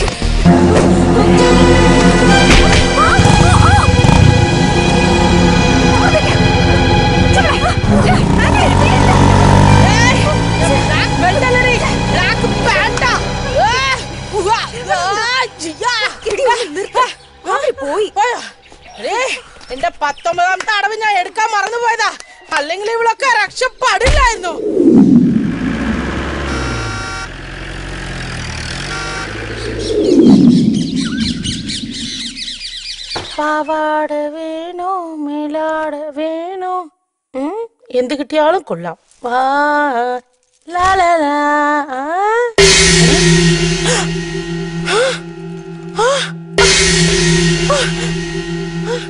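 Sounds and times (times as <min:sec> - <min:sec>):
birds chirping: 0:15.4 - 0:21.0, 0:28.8 - 0:33.8
low steady drone: 0:24.5 - 0:28.0, 0:28.8 - 0:32.6, 0:42.6 - 0:49.0
low sustained score note: 0:24.6 - 0:27.3, 0:28.8 - 0:32.6, 0:42.6 - 0:49.0.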